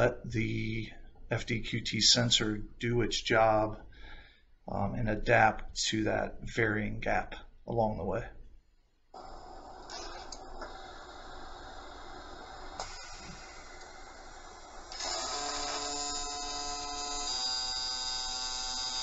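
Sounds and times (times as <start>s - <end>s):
clicks: 9.2s - 11.3s, 12.0s - 14.1s
high buzzing welding whine: 9.2s - 19.0s.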